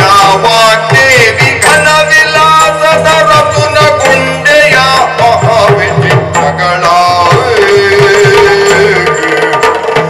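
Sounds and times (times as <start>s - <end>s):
drum strokes: 0.0s - 10.0s
man singing held line: 0.0s - 10.0s.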